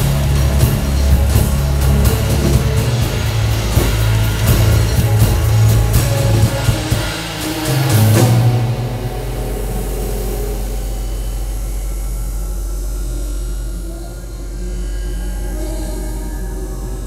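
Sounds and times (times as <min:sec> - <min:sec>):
drum and cymbal crash: 0:00.0 - 0:12.5
low synthesizer drone: 0:00.0 - 0:17.0.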